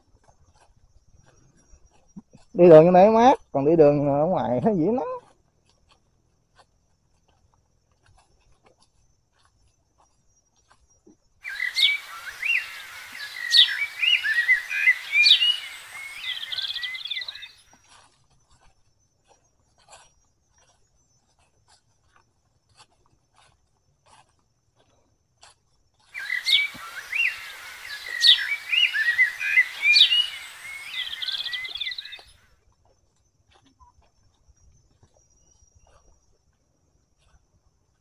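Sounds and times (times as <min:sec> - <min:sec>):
footsteps on dry leaves: 0:11.4 - 0:17.6, 0:26.2 - 0:32.3
songbird singing: 0:11.4 - 0:17.7, 0:26.2 - 0:32.4.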